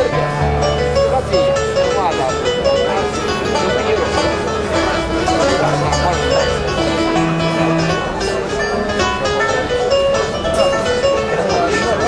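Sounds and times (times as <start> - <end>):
plucked banjo and mandole melody: 0.0 - 12.0.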